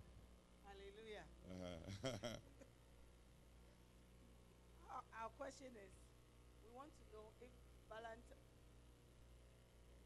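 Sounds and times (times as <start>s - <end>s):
faint low hum: 0.0s - 10.0s
woman speaking: 0.7s - 1.3s, 4.8s - 6.0s, 6.6s - 8.4s.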